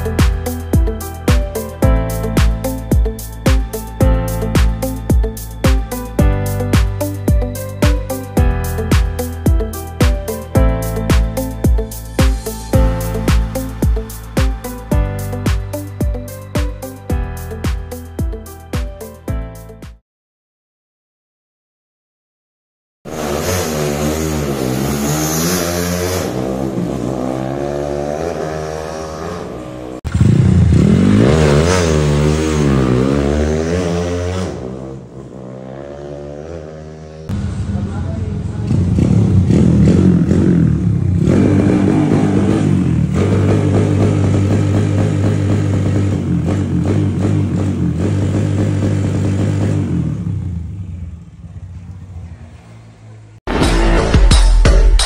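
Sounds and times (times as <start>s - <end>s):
motorcycle engine revving: 23.1s - 53.4s.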